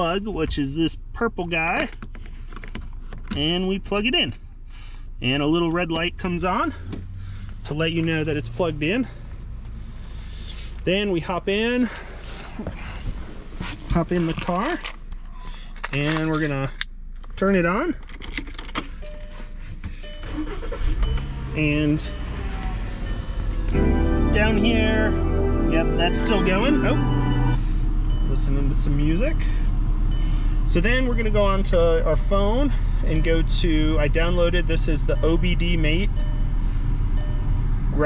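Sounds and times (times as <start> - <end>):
car engine idling: 0.0 - 15.9, 19.0 - 38.0.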